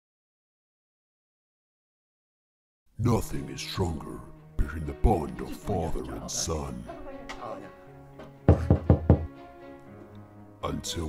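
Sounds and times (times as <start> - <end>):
background music: 2.9 - 11.0.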